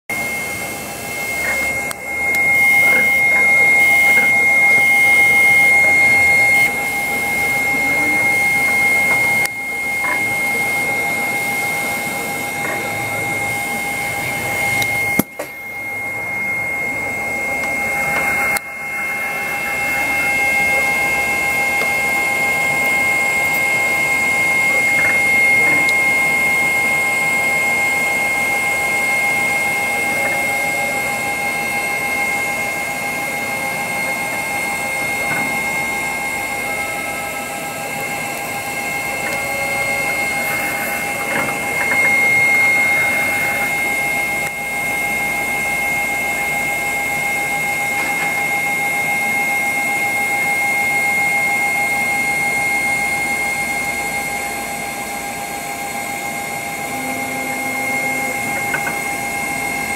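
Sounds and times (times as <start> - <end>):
machine hum with high whine: 0.1 - 59.9.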